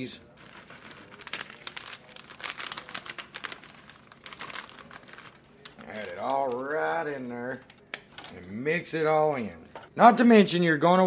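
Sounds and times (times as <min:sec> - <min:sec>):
plastic bag crinkling: 0:00.0 - 0:08.4.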